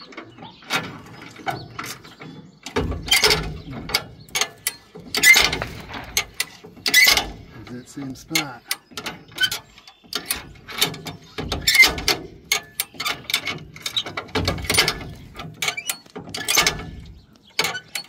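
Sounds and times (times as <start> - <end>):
heavy metal clanks: 0.0 - 18.0
car jack pawl clicking: 0.4 - 18.0.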